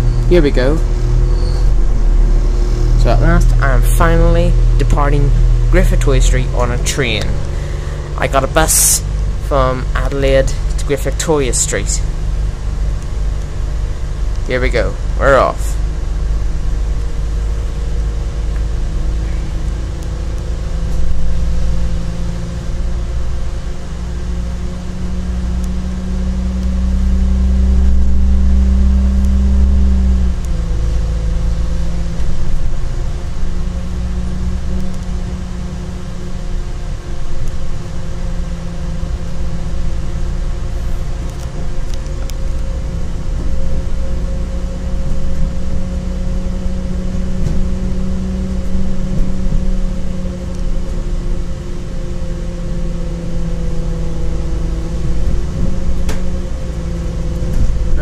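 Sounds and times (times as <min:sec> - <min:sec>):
diesel engine droning: 0:00.0 - 0:58.0.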